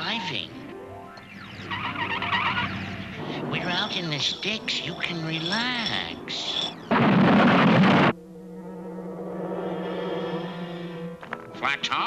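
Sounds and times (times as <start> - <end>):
low held music chord: 8.2 - 11.9.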